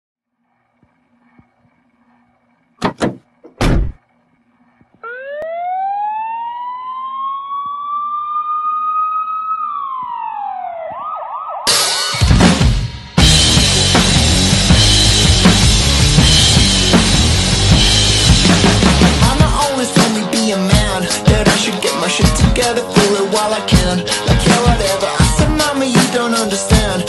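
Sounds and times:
siren wailing: 4.6 - 11.7
loud rock music with drums: 11.7 - 27.0.

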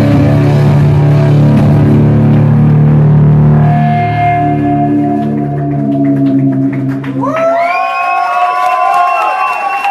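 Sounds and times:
distorted electric guitar with delay: 0.0 - 8.0.

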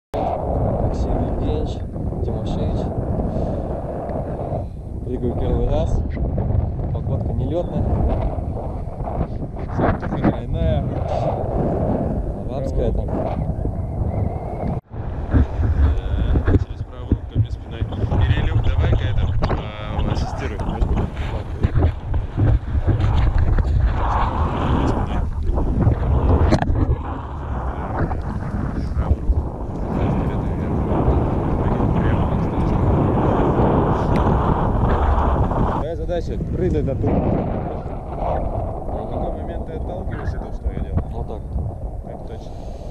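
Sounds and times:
wind buffeting microphone: 0.1 - 42.9.

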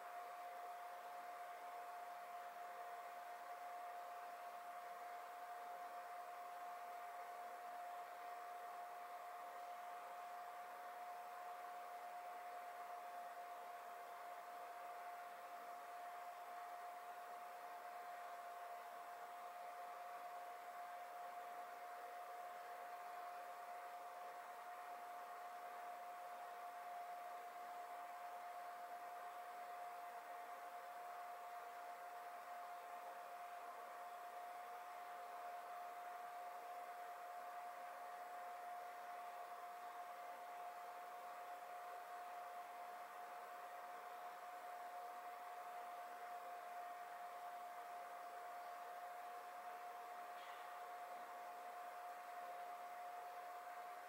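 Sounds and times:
faint steady hiss: 0.0 - 54.0
mid-pitched hum: 0.0 - 54.0.

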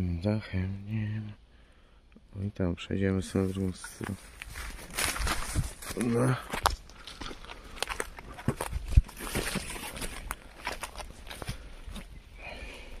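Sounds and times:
footsteps on leaves and twigs: 3.3 - 12.2.

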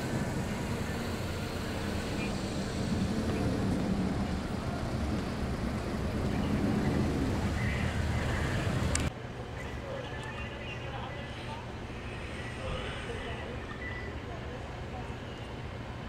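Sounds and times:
faint indistinct voices: 0.0 - 16.0
vehicle traffic rumble: 0.0 - 16.0.

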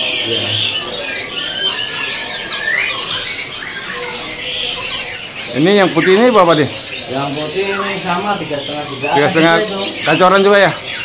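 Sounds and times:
songbirds chirping and whistling: 0.0 - 11.0.

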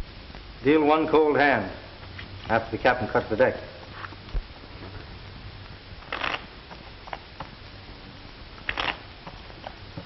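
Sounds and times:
film soundtrack hiss: 0.0 - 10.0.

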